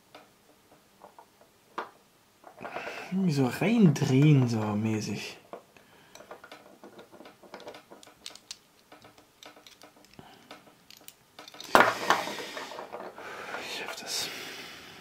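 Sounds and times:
metal puzzle pieces clinking: 0:06.0 - 0:13.2.

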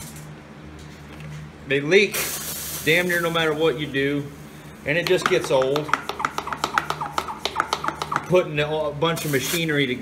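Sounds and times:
steady low hum: 0:00.0 - 0:10.0
rapid clicking with chirps: 0:05.0 - 0:08.4.

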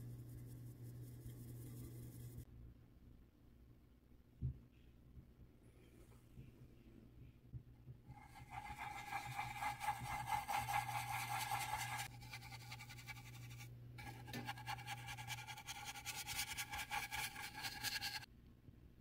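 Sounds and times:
brush scrubbing on canvas: 0:08.1 - 0:18.3.

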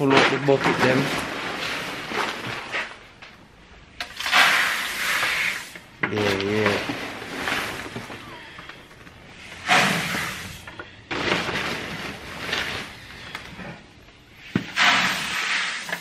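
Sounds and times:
pellets rattling in a bucket: 0:06.2 - 0:08.3, 0:09.8 - 0:13.4.

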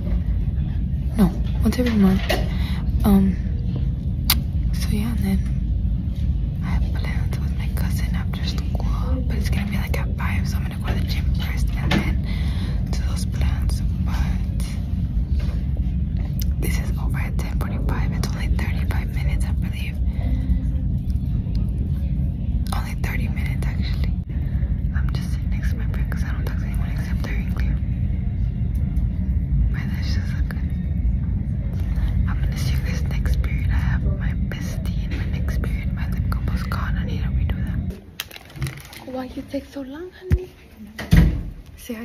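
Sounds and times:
steady low rumble: 0:00.0 - 0:42.0
woman whispering: 0:01.0 - 0:03.8, 0:04.7 - 0:05.6, 0:06.6 - 0:15.0, 0:16.2 - 0:21.9, 0:22.6 - 0:28.1, 0:29.6 - 0:38.0.

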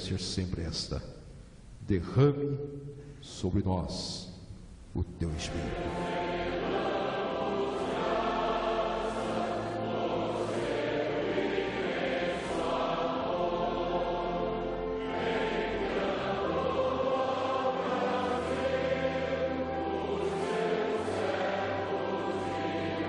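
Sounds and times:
congregation singing a hymn: 0:05.2 - 0:23.0.

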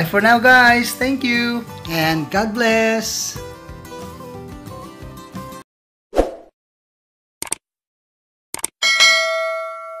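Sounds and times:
notification bell chime: 0:08.8 - 0:10.0.

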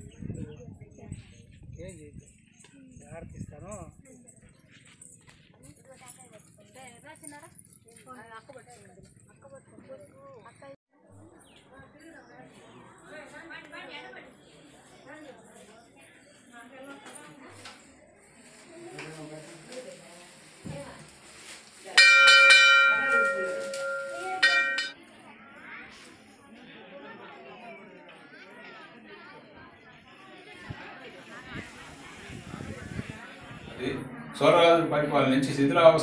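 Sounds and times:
temple bell ringing: 0:22.0 - 0:25.0.

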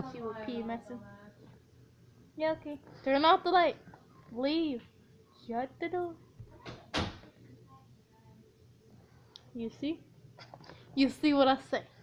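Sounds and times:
door banging shut: 0:06.6 - 0:07.3.

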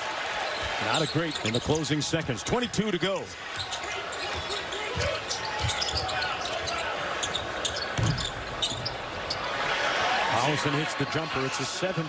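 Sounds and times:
arena crowd noise: 0:00.0 - 0:12.0
sneaker squeaks: 0:00.6 - 0:01.9, 0:03.5 - 0:09.5.

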